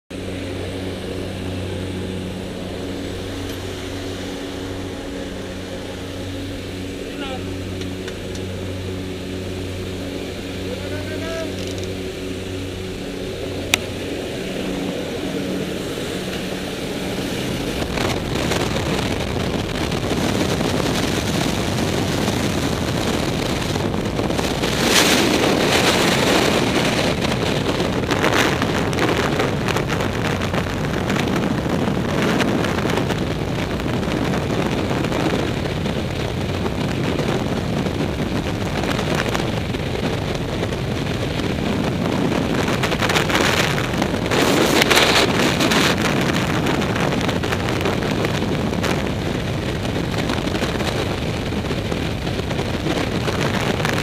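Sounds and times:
propeller engines droning: 0:00.1 - 0:54.0
rushing wind on microphone: 0:00.1 - 0:54.0.

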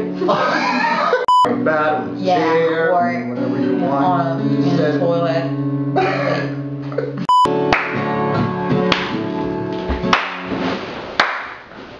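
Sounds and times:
short electronic beep: 0:01.3 - 0:01.5, 0:07.3 - 0:07.5
acoustic guitar strumming chords: 0:01.3 - 0:11.2.

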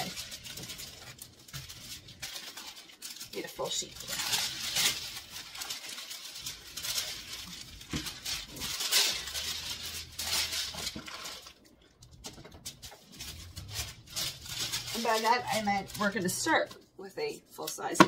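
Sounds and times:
tissue paper rustling and crinkling: 0:00.0 - 0:16.9.

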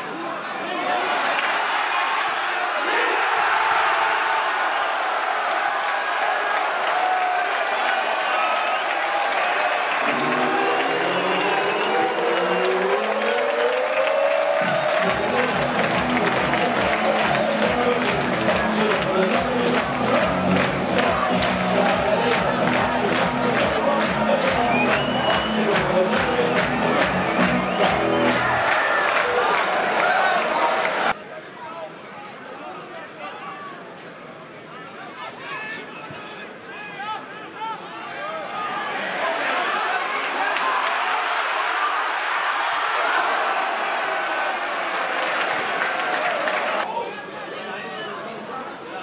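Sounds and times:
football crowd cheering: 0:00.0 - 0:31.2, 0:37.2 - 0:47.4.

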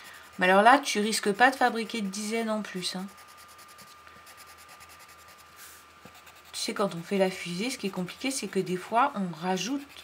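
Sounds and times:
pencil scratching on paper: 0:00.0 - 0:01.9, 0:02.8 - 0:10.0.

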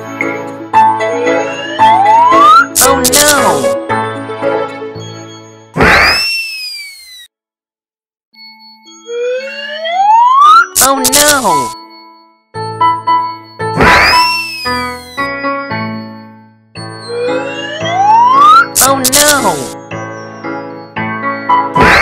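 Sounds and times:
ringing chime tones: 0:00.0 - 0:02.8, 0:08.4 - 0:21.7
slide whistle rising: 0:01.2 - 0:02.8, 0:05.9 - 0:07.3, 0:13.8 - 0:15.3, 0:17.2 - 0:18.8
cartoon whoosh with whistle: 0:05.8 - 0:07.3, 0:13.8 - 0:15.3.

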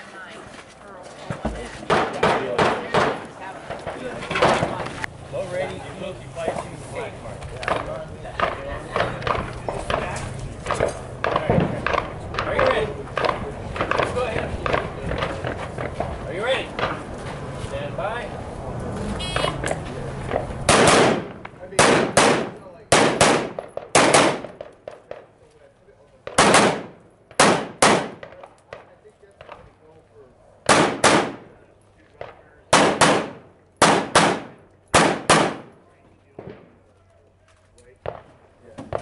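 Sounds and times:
pistol shots: 0:01.9 - 0:03.3, 0:20.7 - 0:25.3, 0:26.2 - 0:29.6, 0:30.6 - 0:31.6, 0:32.2 - 0:36.7.

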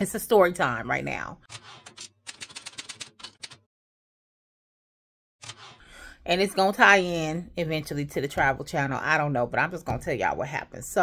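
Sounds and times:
typewriter keys clacking: 0:01.5 - 0:03.7.

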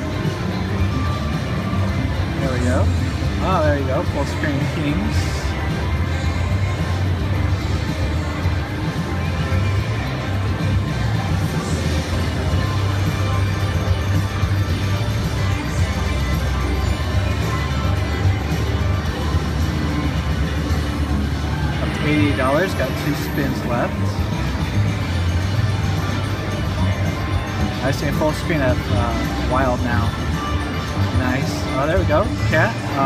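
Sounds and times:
electronic slot machine music: 0:00.0 - 0:33.0.

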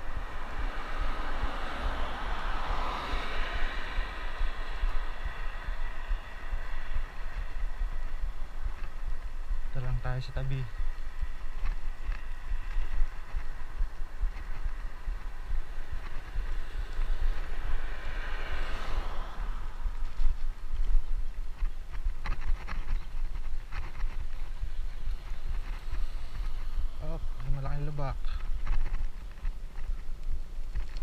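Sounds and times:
bicycle rattles: 0:00.0 - 0:31.0
passing vehicle: 0:00.0 - 0:31.0
road noise: 0:00.0 - 0:31.0
wind rumbling on microphone: 0:00.0 - 0:31.0.

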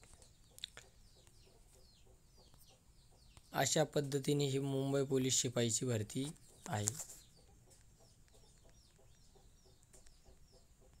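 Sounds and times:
faint bird chirps: 0:00.0 - 0:11.0.

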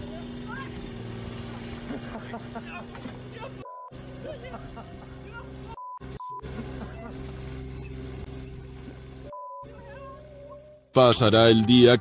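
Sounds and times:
excavator engine running: 0:00.0 - 0:12.0
men shouting: 0:02.0 - 0:05.7
censor bleeps: 0:09.2 - 0:12.0.

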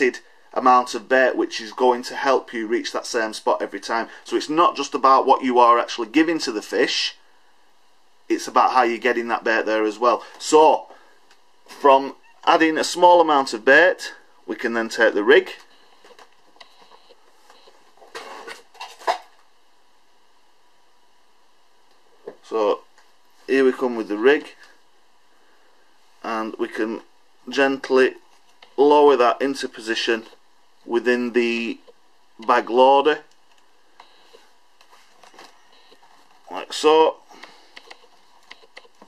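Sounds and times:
soft plastic rustles: 0:33.4 - 0:36.6.

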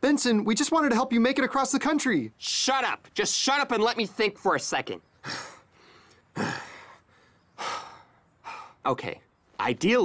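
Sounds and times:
man sighing heavily: 0:05.2 - 0:08.8.

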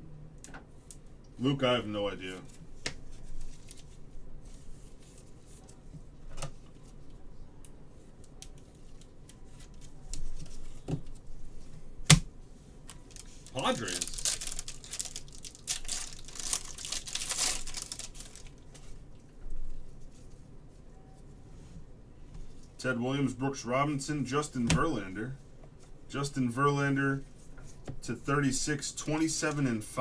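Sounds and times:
plastic wrapping crinkling and tearing: 0:02.4 - 0:04.0, 0:12.9 - 0:19.0.

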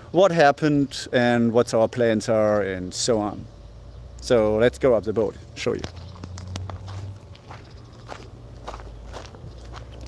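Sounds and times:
footsteps walking: 0:05.8 - 0:10.0.

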